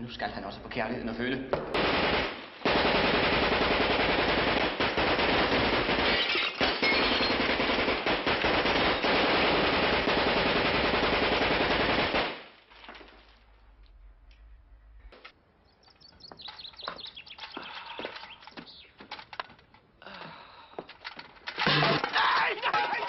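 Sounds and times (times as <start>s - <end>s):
submachine gun automatic fire: 1.8s - 12.5s.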